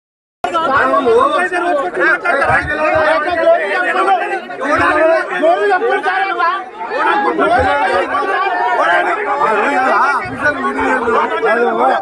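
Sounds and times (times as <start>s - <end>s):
men talking in a crowd: 0.4s - 12.0s.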